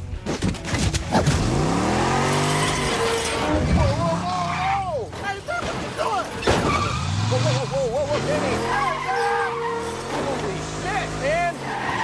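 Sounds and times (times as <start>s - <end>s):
metal crunching: 0.0s - 12.0s
tyres skidding: 0.6s - 12.0s
truck engine revving: 1.0s - 4.8s, 6.3s - 12.0s.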